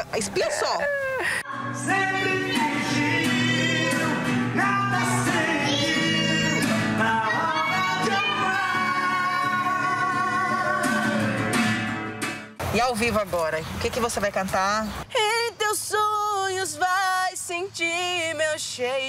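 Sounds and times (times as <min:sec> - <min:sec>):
children singing: 0:01.5 - 0:11.6
acoustic guitar strummed: 0:01.5 - 0:12.6.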